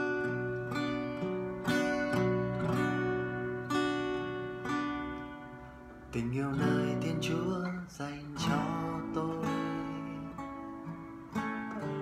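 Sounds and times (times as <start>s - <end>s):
acoustic guitar chord ringing: 0.0s - 12.0s.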